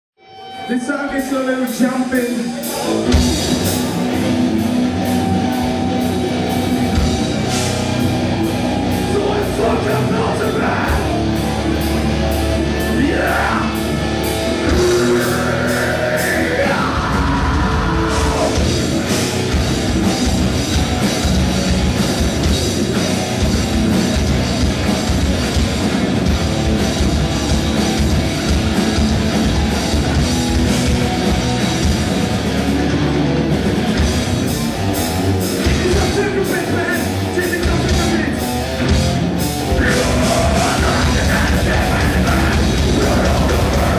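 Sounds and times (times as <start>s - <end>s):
rock band playing: 0.2s - 43.9s.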